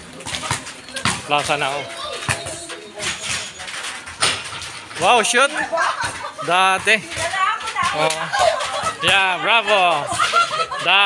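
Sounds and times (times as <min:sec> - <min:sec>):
basketball bouncing on concrete: 0:00.2 - 0:01.6, 0:02.2 - 0:03.4, 0:06.0 - 0:09.4.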